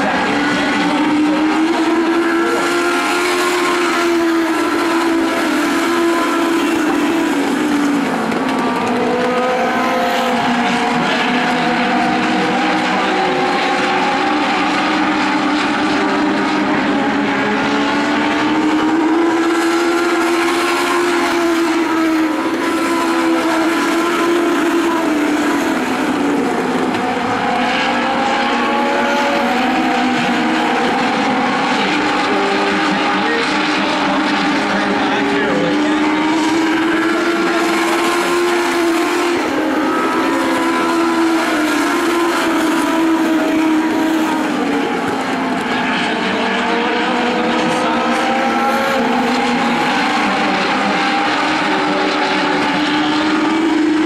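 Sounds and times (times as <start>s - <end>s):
racing car engines revving: 0.0s - 54.0s.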